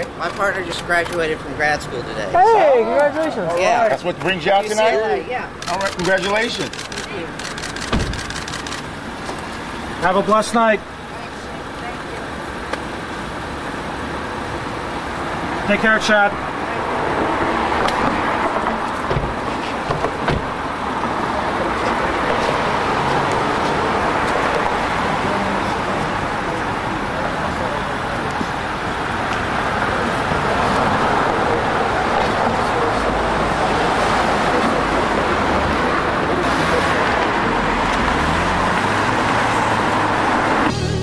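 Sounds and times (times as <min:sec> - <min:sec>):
street traffic noise: 0:00.0 - 0:41.0
sharp clicks: 0:05.6 - 0:09.6
car pulling away: 0:17.0 - 0:41.0.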